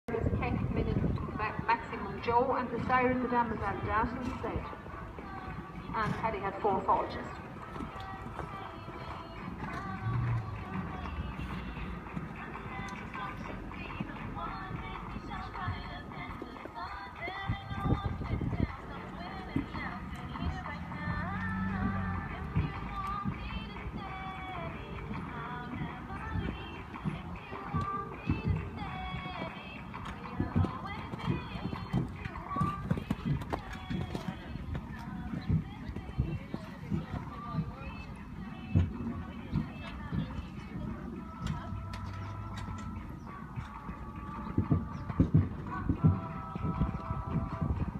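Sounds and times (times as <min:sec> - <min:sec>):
background music: 0:00.1 - 0:47.9
horse hoofbeats on sand: 0:00.2 - 0:47.9.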